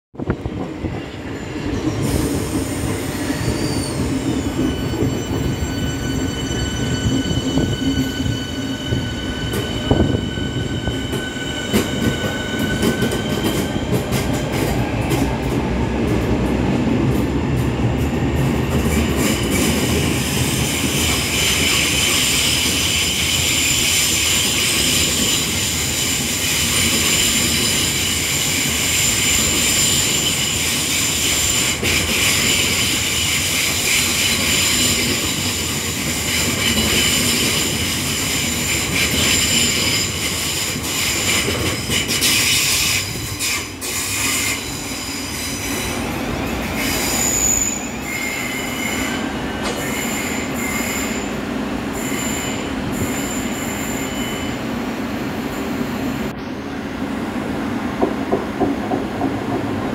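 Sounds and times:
train wheel and brake squeal: 0:00.8 - 0:15.3, 0:18.8 - 0:56.5
train wheels clicking and clattering: 0:01.6 - 0:51.4, 0:57.9 - 0:59.9.

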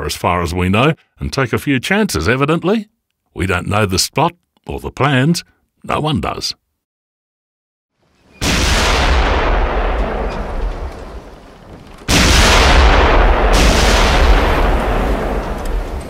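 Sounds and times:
artillery explosions: 0:08.3 - 0:16.0
gunfire: 0:08.4 - 0:16.0.

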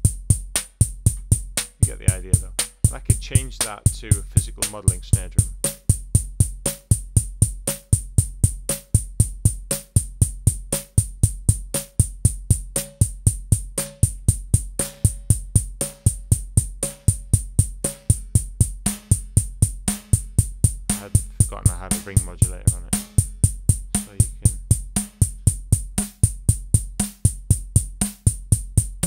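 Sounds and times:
bass drum and hi-hat pulse: 0:00.0 - 0:29.0
drum machine beat: 0:00.0 - 0:29.0.

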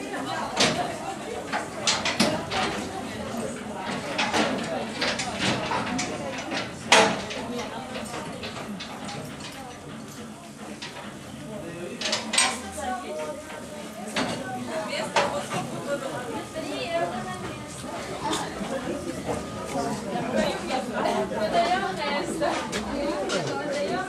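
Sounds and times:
group of people talking: 0:00.0 - 0:24.0.

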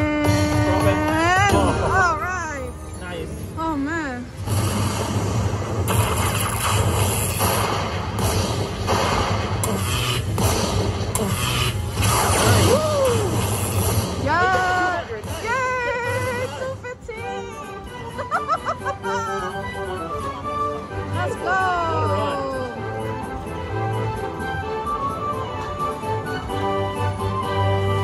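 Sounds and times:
electric crackling: 0:04.4 - 0:14.8.

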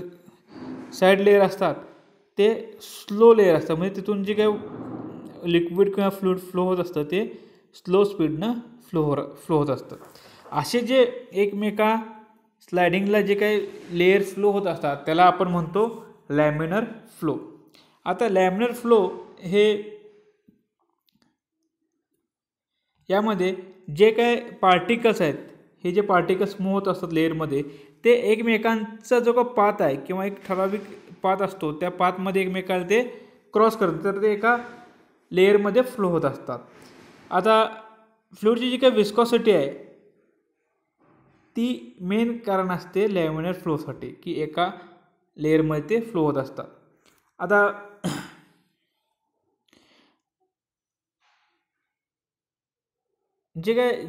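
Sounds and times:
faint short breath: 0:10.1 - 0:10.6.

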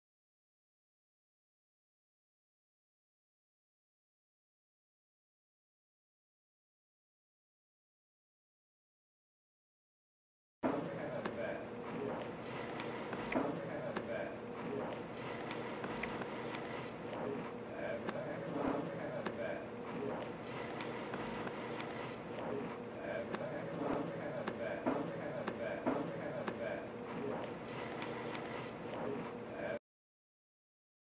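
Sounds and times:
indistinct voices: 0:10.6 - 0:29.8
sharp clicks: 0:12.6 - 0:13.4, 0:15.2 - 0:16.9, 0:20.2 - 0:22.2, 0:27.8 - 0:28.7.

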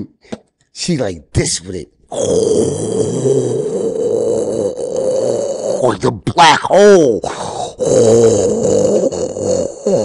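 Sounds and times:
man making low guttural noise: 0:02.1 - 0:10.0.

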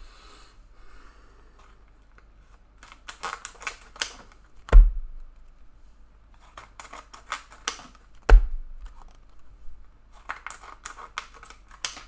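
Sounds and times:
cards and packaging rustling: 0:01.6 - 0:04.7, 0:06.3 - 0:09.5, 0:10.1 - 0:12.0
heavy thump on table: 0:04.7 - 0:05.2, 0:08.3 - 0:08.6.

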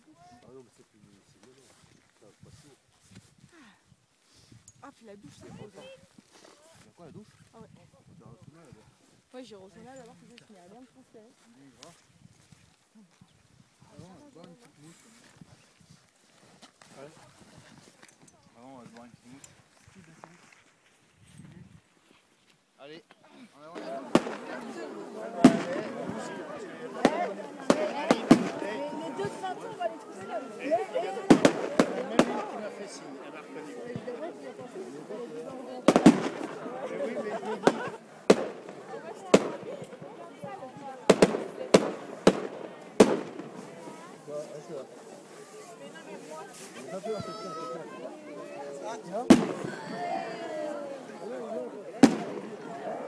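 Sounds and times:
faint voices speaking: 0:00.0 - 0:53.0
firework shells bursting: 0:24.1 - 0:24.6, 0:35.9 - 0:36.6, 0:37.6 - 0:40.0, 0:41.1 - 0:43.7.

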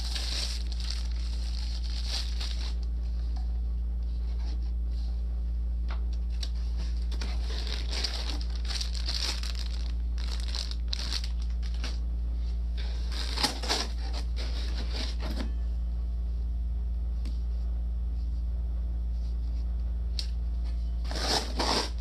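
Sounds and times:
plastic bag crinkling: 0:00.0 - 0:02.9, 0:07.2 - 0:12.0.

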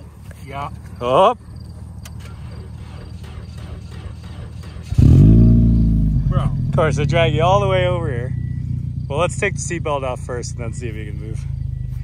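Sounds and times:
car engine starting and running: 0:00.0 - 0:12.0
low steady rumble: 0:00.0 - 0:12.0.

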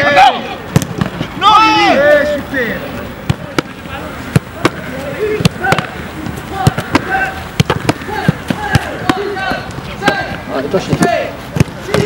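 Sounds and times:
voices calling out: 0:00.0 - 0:12.0
footballs kicked into gloves: 0:00.7 - 0:01.3, 0:06.6 - 0:12.0.

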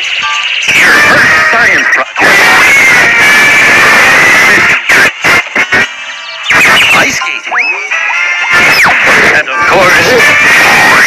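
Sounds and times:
cartoon music: 0:00.2 - 0:11.0
cartoon sound effects: 0:00.3 - 0:11.0.

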